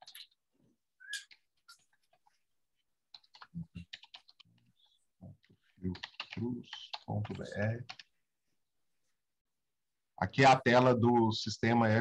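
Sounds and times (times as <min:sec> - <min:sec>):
keyboard typing: 0:03.0 - 0:08.2.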